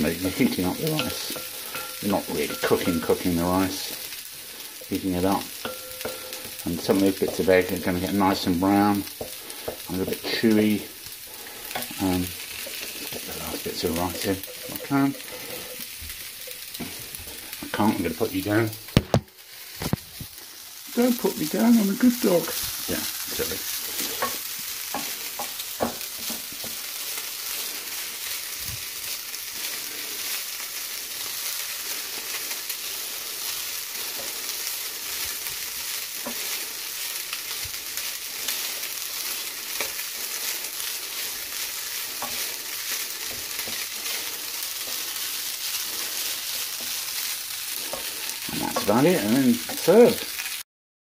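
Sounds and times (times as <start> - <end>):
wooden spoon scraping pan: 0.0 - 10.8, 11.4 - 18.2, 22.0 - 28.0, 38.0 - 49.9
rice sizzling in frying pan: 0.0 - 50.6.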